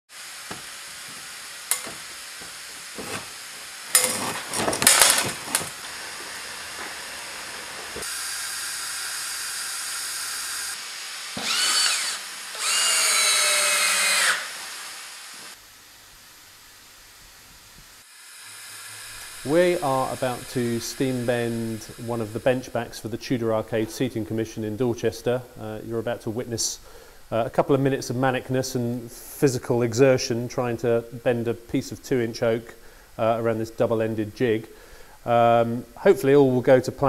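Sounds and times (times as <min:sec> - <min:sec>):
steam hissing: 0:00.1 - 0:15.6, 0:17.8 - 0:23.2
power drill bursts: 0:00.2 - 0:15.6, 0:18.0 - 0:22.8
pitched whines: 0:00.5 - 0:15.6.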